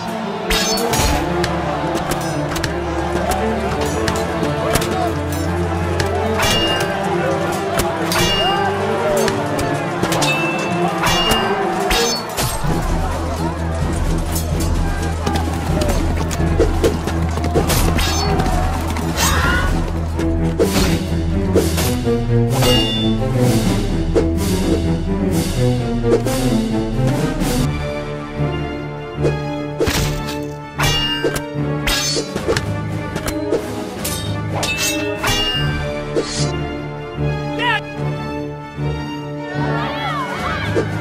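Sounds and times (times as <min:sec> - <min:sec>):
swords clashing: 0:00.0 - 0:01.2, 0:06.4 - 0:07.0, 0:07.8 - 0:09.4, 0:10.1 - 0:12.7, 0:17.7 - 0:18.4, 0:29.8 - 0:32.6, 0:34.0 - 0:36.5
battle shouting: 0:00.0 - 0:20.1, 0:39.3 - 0:41.0
background music with low drone: 0:00.0 - 0:41.0.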